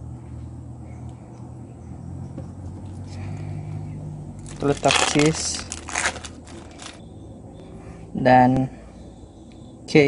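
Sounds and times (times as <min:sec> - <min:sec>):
faint low hum: 0:00.0 - 0:10.0
hands rustling food: 0:04.4 - 0:07.0.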